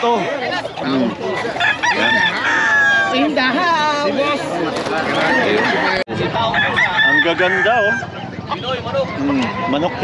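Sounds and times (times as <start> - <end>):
men's voices: 0.0 - 3.1, 3.8 - 10.0
rooster crowing: 1.5 - 3.4, 5.1 - 8.1.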